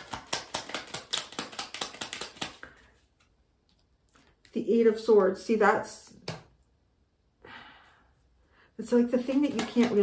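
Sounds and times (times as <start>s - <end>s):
cards being shuffled: 0.0s - 3.4s.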